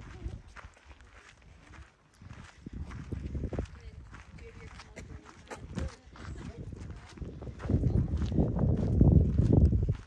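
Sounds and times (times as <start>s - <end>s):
footsteps on dirt and gravel: 0.0s - 10.0s.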